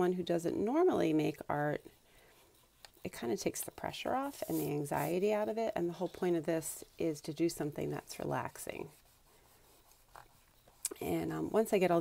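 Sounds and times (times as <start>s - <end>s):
eraser rubbing on paper: 0.0s - 12.0s.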